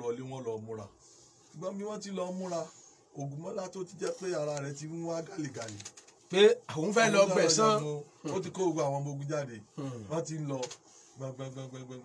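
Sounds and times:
man speaking: 1.6 - 12.0.

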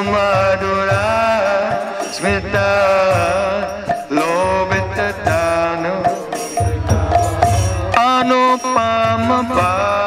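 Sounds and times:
man singing devotional song: 0.0 - 10.0.

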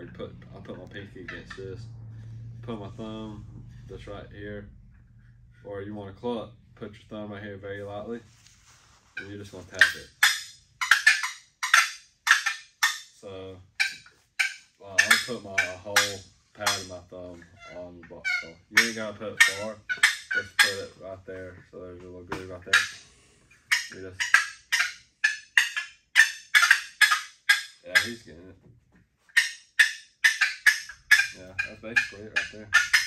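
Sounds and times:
turkey box calls clucking: 9.2 - 21.1, 22.3 - 28.2, 29.3 - 33.0.

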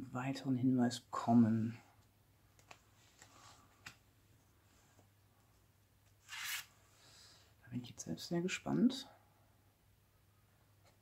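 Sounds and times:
papery card swish: 6.3 - 6.7.

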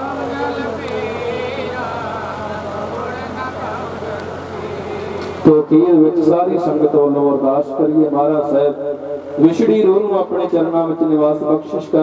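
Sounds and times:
devotional singing over loudspeakers: 0.0 - 12.0
steady low hum: 0.0 - 12.0.

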